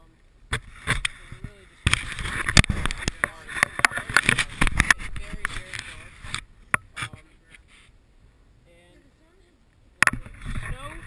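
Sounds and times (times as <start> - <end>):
rubbing on camera: 0.5 - 8.0, 10.2 - 11.0.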